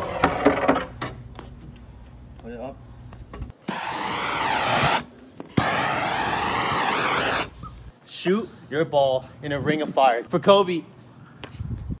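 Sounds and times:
gas torch flame hissing: 3.6 - 7.9
torch ignition click: 3.7 - 7.9.

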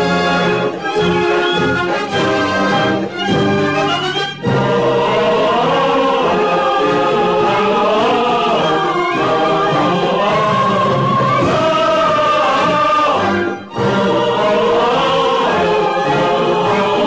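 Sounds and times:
choir singing: 0.0 - 17.0
orchestral accompaniment: 0.0 - 17.0.

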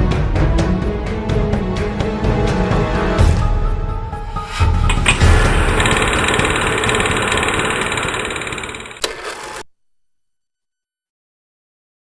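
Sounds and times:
sharp click: 4.9 - 9.7.

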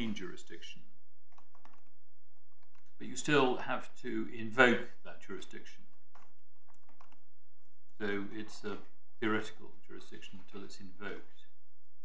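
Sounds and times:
steady low hum: 0.0 - 12.0
computer keyboard typing: 1.3 - 1.9, 6.2 - 7.2.

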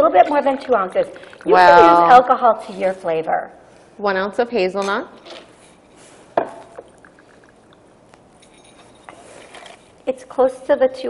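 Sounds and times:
glass clinking: 6.4 - 9.5.

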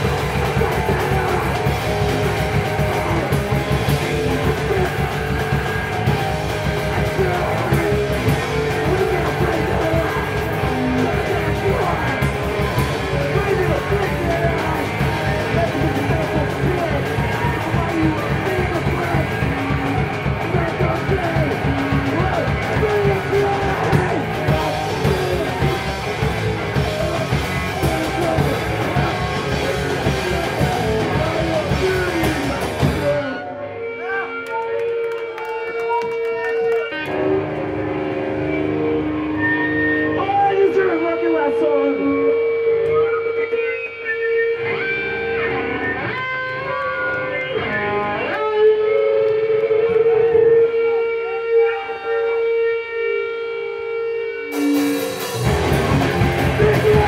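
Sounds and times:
drum kit: 0.0 - 33.4, 54.5 - 57.0
electric guitar: 0.0 - 57.0
sliding guitar notes: 44.5 - 57.0.

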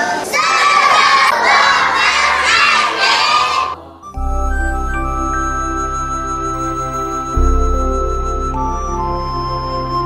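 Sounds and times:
children's voices chorus: 0.0 - 3.9
soft instrumental music: 3.9 - 10.0.

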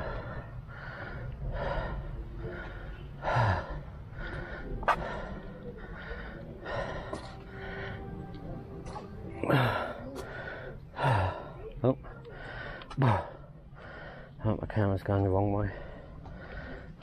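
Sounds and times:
man panting: 0.0 - 8.4, 9.2 - 14.4, 15.6 - 17.0.

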